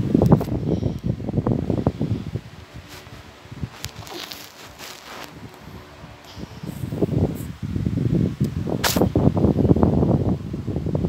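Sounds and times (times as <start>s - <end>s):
rubbing against phone microphone: 1.8s - 7.6s
sharp click: 8.4s - 9.1s.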